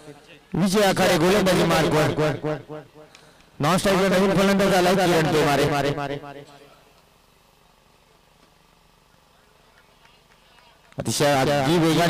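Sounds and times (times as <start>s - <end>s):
faint outdoor hum: 0.0s - 12.0s.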